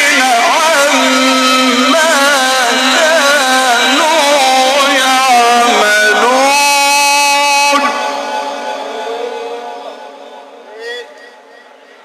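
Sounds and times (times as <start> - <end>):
man reciting melodically over loudspeakers: 0.0 - 12.0.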